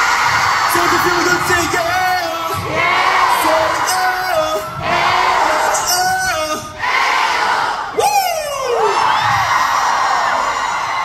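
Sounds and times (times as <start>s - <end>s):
concert crowd cheering and screaming: 0.0s - 11.0s.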